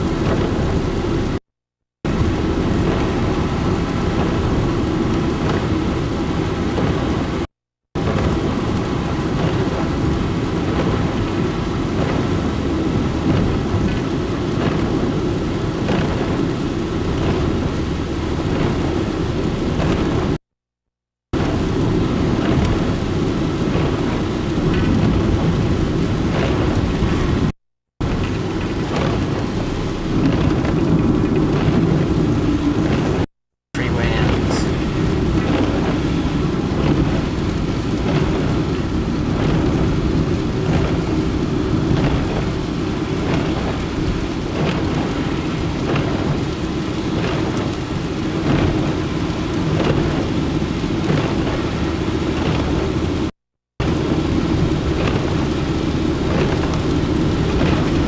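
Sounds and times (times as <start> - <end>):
rain ticking on windshield: 0.0 - 1.4, 2.1 - 20.4, 21.4 - 58.0
windshield wiper sweeping: 0.0 - 1.4, 2.1 - 20.4, 21.4 - 58.0
tyre and wind rumble: 21.4 - 58.0.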